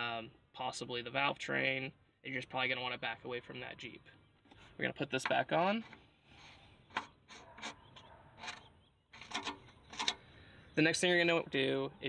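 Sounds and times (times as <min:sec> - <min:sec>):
cap scraping as turned: 0:05.8 - 0:10.2.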